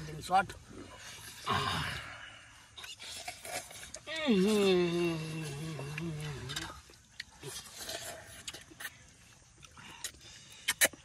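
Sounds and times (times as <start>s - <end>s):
slurping and chewing: 0.7s - 11.0s.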